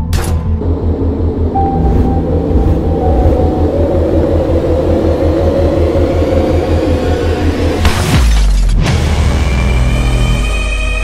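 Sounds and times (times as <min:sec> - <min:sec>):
truck engine rumbling: 0:00.5 - 0:08.6
faint whine: 0:00.6 - 0:07.9.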